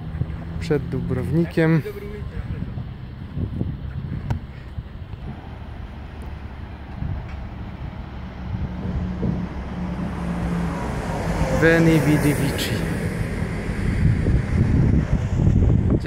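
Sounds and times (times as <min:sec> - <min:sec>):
road traffic hum: 0:00.0 - 0:16.0
wind on microphone: 0:02.3 - 0:11.6, 0:12.8 - 0:16.0.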